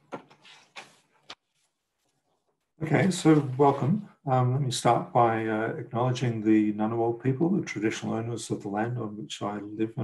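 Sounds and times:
man saying a word: 2.8 - 10.0.

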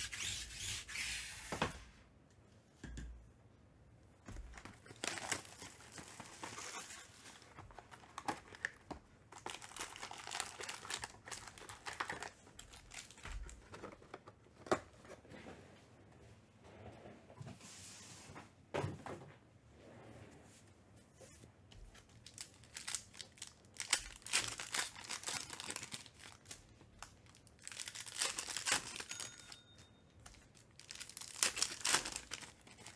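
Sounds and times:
foil packs crinkling: 4.4 - 14.1, 22.2 - 29.5, 30.2 - 32.9.

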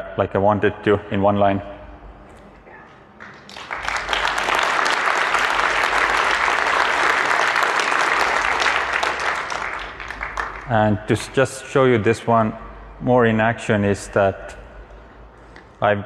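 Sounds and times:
audience applause: 3.2 - 11.4.

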